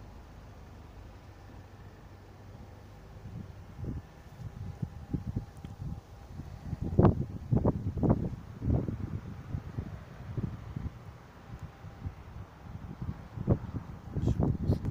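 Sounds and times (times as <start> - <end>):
wind buffeting microphone: 2.4 - 14.9.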